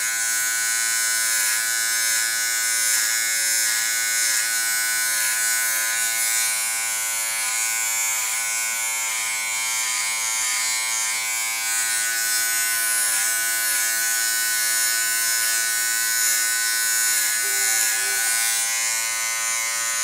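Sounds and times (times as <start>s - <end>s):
electric hair clipper buzzing: 0.0s - 20.0s.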